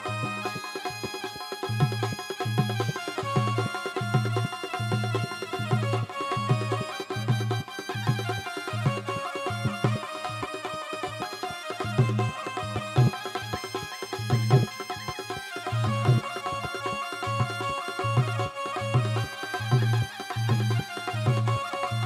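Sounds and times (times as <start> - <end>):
keyboard melody and chords: 0.0 - 22.0.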